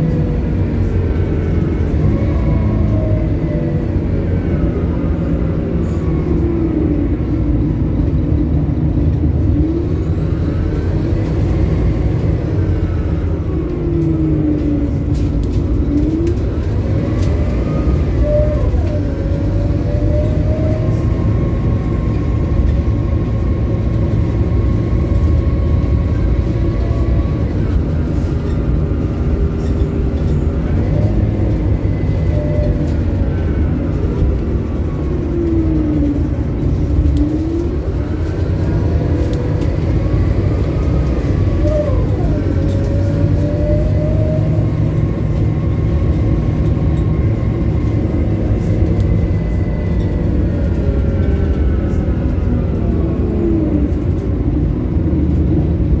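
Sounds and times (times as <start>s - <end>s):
bus engine low rumble: 0.0s - 56.0s.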